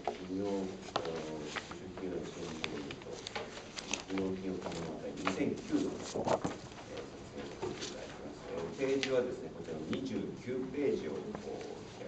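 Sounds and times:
man speaking hesitantly: 0.0s - 6.2s, 6.8s - 12.0s
paper rustling: 0.0s - 12.0s.

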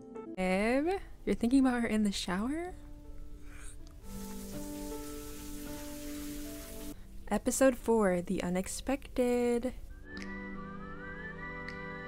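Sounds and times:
soft music with held notes: 0.0s - 7.4s, 9.9s - 12.0s
shower water spraying: 4.0s - 7.0s.

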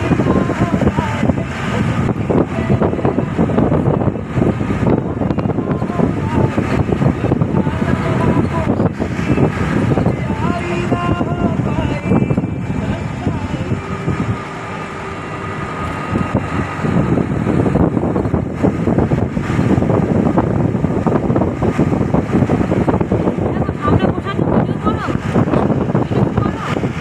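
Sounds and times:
vehicle engine and road noise: 0.0s - 27.0s
wind buffeting microphone: 0.0s - 27.0s.

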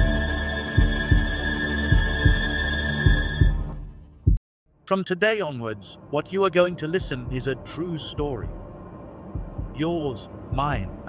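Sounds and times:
high drone: 0.0s - 3.7s
deep heartbeat-like thumps: 0.0s - 4.4s, 7.0s - 7.6s, 8.2s - 11.0s
man speaking: 4.9s - 8.6s, 9.7s - 11.0s.

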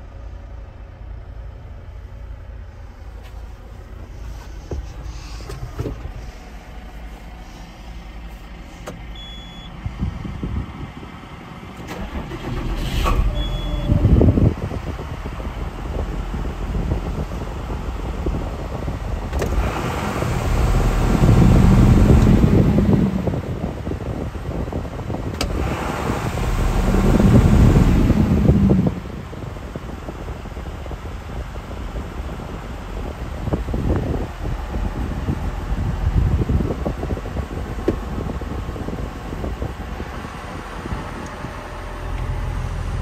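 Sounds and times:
tractor diesel engine idling: 0.0s - 19.6s, 26.5s - 43.0s.

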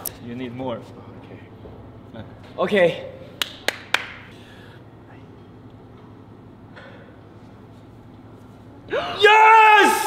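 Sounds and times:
low room noise: 0.0s - 10.0s
sharp hand claps: 3.3s - 4.3s.

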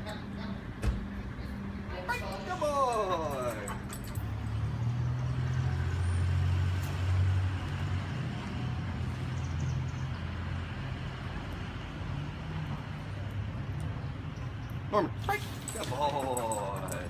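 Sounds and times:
traffic noise: 0.0s - 17.0s
vehicle engine rumble: 0.0s - 17.0s.

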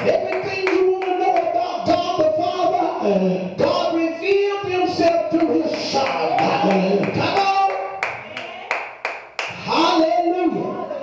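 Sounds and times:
hands clapping in steady beat: 0.0s - 2.1s, 4.3s - 9.6s.

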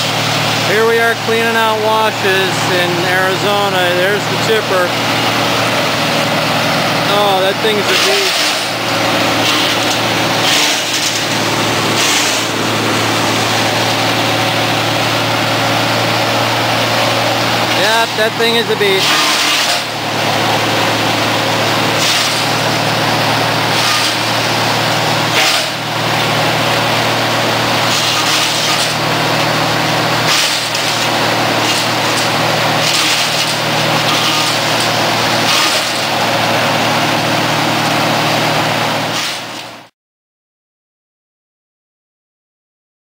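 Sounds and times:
wood chipper running: 0.0s - 39.9s.

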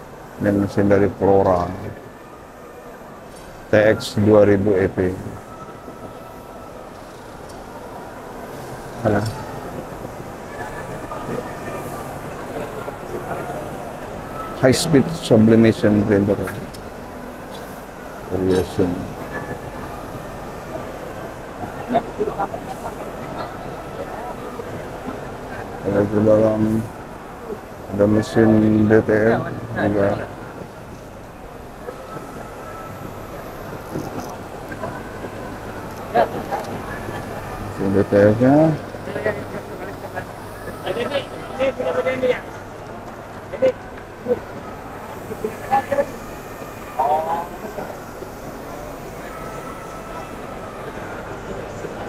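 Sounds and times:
faint steady machine tone: 0.0s - 52.0s
printer running: 0.4s - 52.0s
crowd din: 0.6s - 52.0s.

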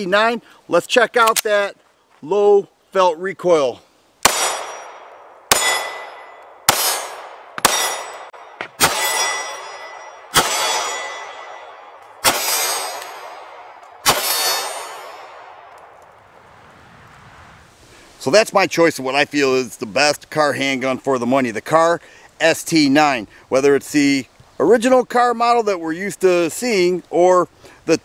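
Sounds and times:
pistol shots echoing: 4.2s - 15.7s.

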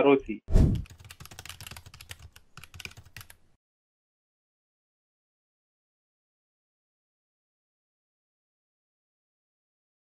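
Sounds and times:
keyboard typing clicks: 0.7s - 3.4s.

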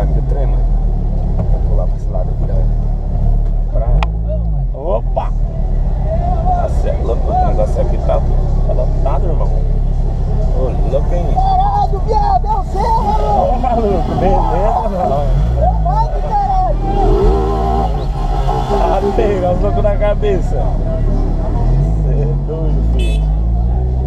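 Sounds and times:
car engine rumbling: 0.0s - 24.0s
voices: 0.0s - 24.0s.

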